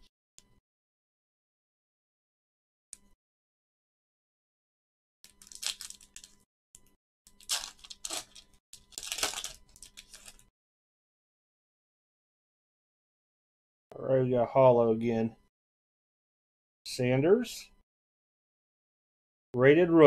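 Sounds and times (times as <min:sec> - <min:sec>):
foil wrapper tearing and crinkling: 0:05.3 - 0:06.4, 0:07.4 - 0:10.4.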